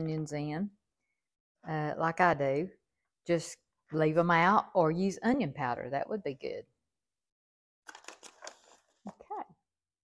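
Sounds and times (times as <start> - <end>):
aluminium foil pans crinkling: 7.9 - 9.2.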